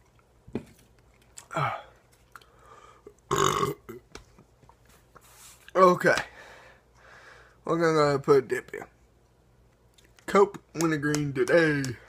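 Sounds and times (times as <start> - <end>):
man burping loudly: 3.3 - 4.0.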